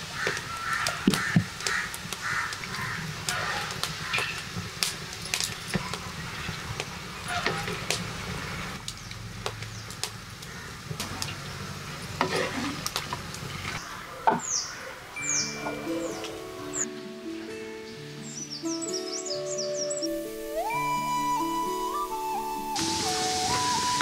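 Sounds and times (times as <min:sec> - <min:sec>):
birds calling: 0:00.1 - 0:04.5, 0:13.6 - 0:24.0.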